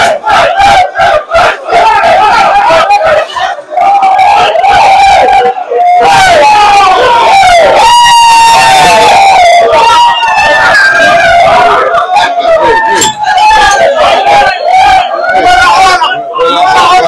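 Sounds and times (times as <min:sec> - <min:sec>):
men shouting and chanting: 0:00.0 - 0:17.0.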